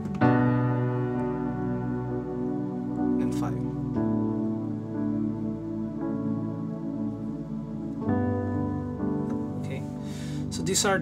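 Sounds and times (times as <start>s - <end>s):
piano chord ringing: 0.0s - 11.0s.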